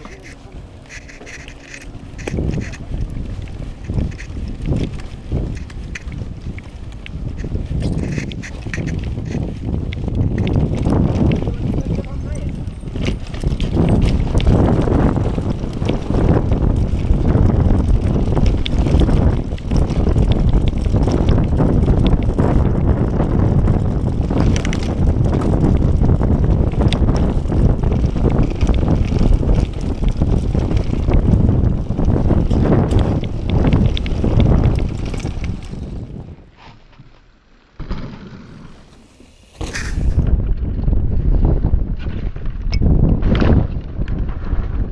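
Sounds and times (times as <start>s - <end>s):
bike rattling and knocking: 0.0s - 36.4s, 37.8s - 44.9s
wind buffeting microphone: 0.0s - 36.6s, 38.3s - 44.9s
bike tyre noise on dirt: 0.0s - 44.9s.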